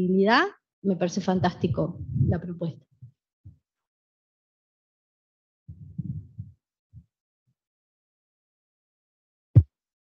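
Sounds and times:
low muffled thumps: 1.3 - 3.1, 5.7 - 7.1.

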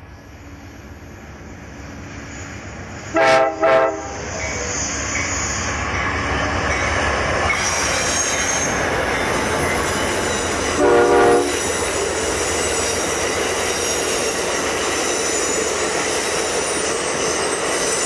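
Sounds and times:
train rumbling past: 0.0 - 18.0
locomotive horn blast: 3.1 - 4.3, 10.8 - 11.6.

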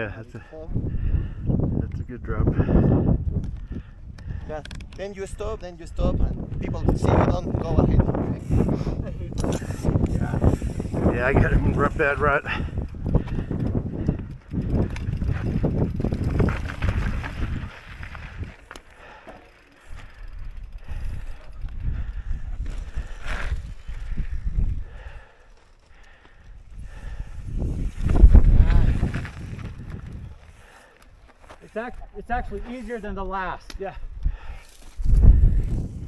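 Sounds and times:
wind on microphone: 0.6 - 18.7, 19.9 - 25.3, 26.4 - 30.8, 31.9 - 36.0
bike tyres rolling and rattling: 0.7 - 36.0.

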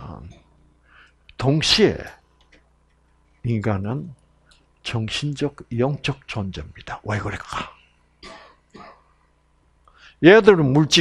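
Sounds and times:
person clearing throat: 8.2 - 9.1.

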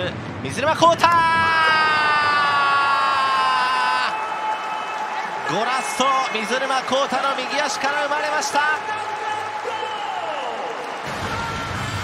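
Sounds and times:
stadium crowd cheering: 0.5 - 12.0
commentator long shout: 0.9 - 4.6.

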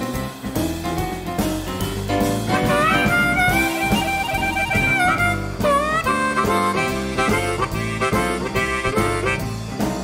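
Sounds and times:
jazz-blues band music: 0.0 - 10.0.

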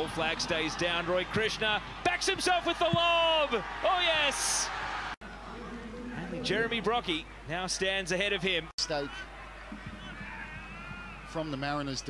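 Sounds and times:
stadium crowd: 0.0 - 12.0.

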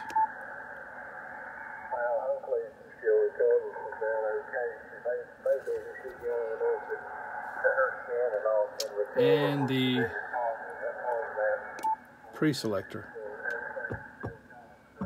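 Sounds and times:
radio band hiss: 0.0 - 15.0
radio voice: 1.9 - 14.7.

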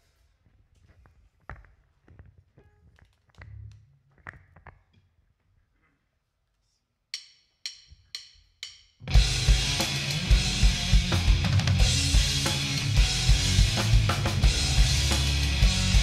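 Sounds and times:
drumstick count-in clicks: 7.2 - 8.9
rock band playing: 9.0 - 16.0.

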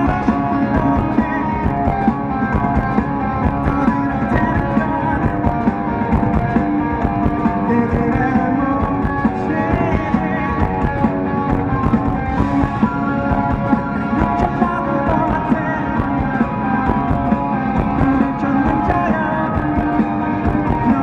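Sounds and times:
electric guitar: 0.0 - 21.0
live rock band playing: 0.0 - 21.0.

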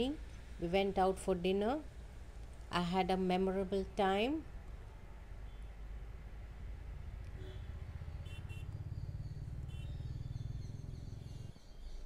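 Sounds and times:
low rumble of traffic: 0.0 - 12.0.

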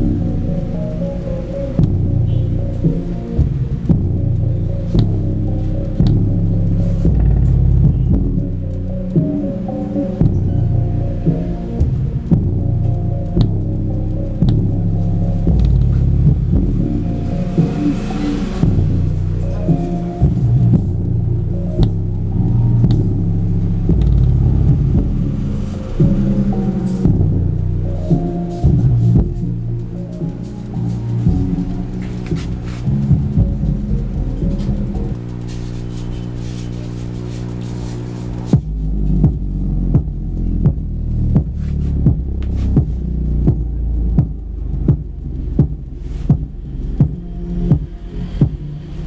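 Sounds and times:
bass-heavy electronic dance music: 0.0 - 49.0.

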